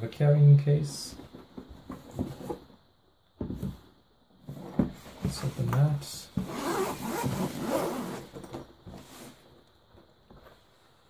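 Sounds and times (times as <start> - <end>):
zipper being pulled open: 6.4 - 8.4.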